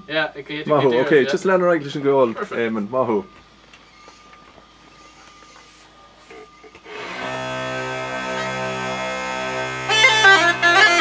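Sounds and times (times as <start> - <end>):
uilleann pipes playing: 6.9 - 11.0.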